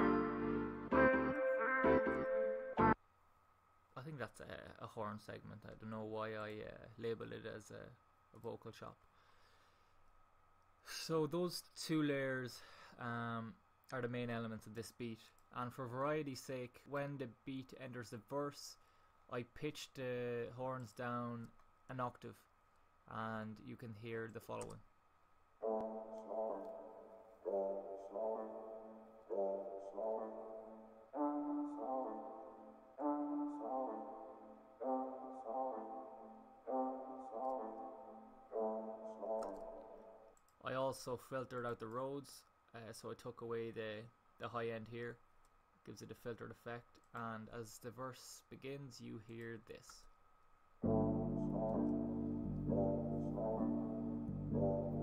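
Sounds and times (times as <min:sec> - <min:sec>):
faint room tone hiss: 0:00.0 - 0:55.0
looped brass sample in hip-hop beat: 0:50.8 - 0:55.0.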